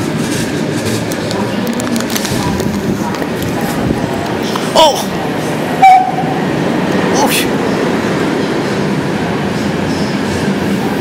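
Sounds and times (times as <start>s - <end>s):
train coaches rumbling past: 0.0s - 11.0s
train horn toot: 5.8s - 6.4s.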